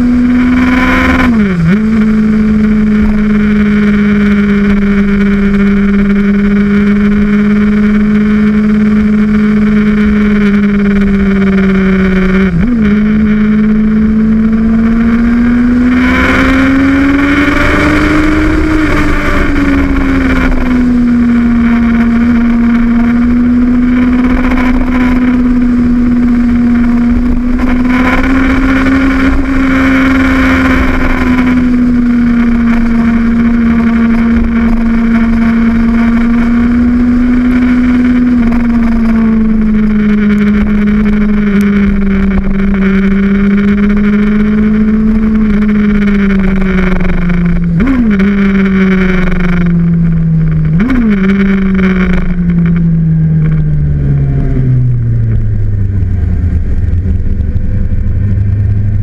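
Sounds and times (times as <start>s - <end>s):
motorcycle engine running hard: 0.0s - 59.0s
motorcycle throttle blips: 0.0s - 59.0s
wind rush: 15.6s - 59.0s.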